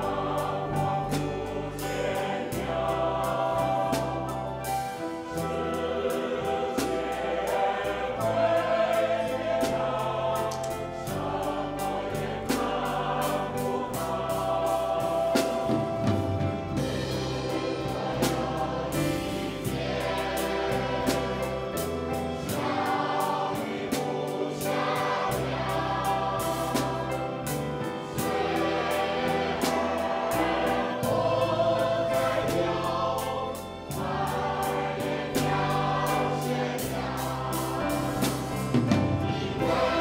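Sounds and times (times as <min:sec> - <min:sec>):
mixed choir singing: 0:00.0 - 0:40.0
live band with drum beat: 0:11.1 - 0:40.0.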